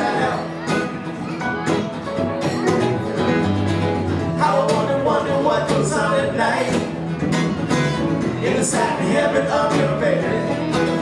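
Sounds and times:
acoustic guitars strummed: 0.0s - 11.0s
electric bass guitar: 0.0s - 11.0s
keyboard: 0.0s - 11.0s.

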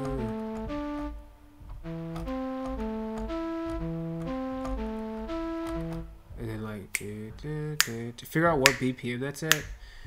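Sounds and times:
synthesizer flute melody: 0.0s - 6.5s.

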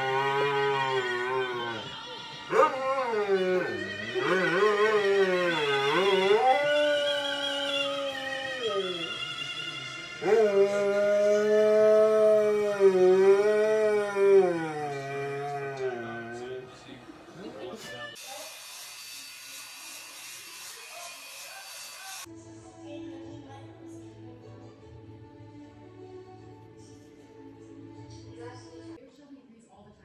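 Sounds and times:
dog howling: 0.0s - 16.6s.

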